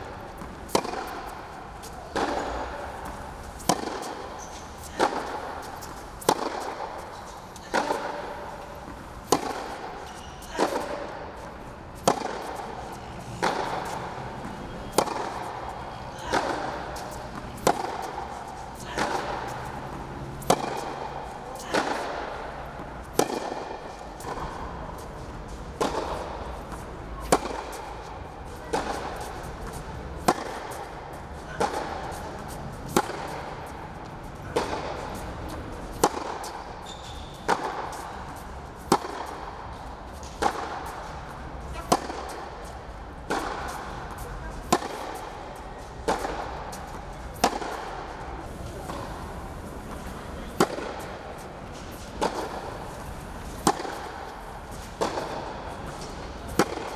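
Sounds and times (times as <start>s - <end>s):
racket hitting tennis ball: 0.0s - 56.9s.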